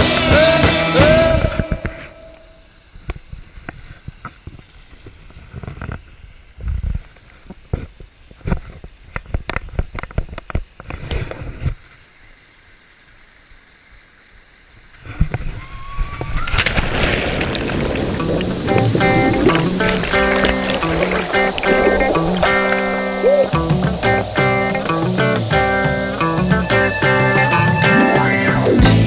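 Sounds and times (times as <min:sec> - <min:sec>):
water rushing: 0:12.4 - 0:29.0.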